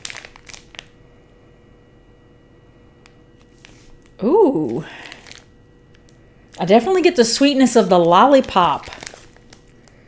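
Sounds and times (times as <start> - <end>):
plastic bag crinkling: 0.0 - 1.0, 3.4 - 10.0.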